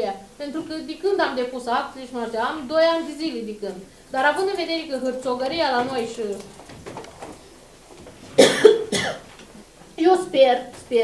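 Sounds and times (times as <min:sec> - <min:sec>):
woman coughing: 0:08.4 - 0:09.3.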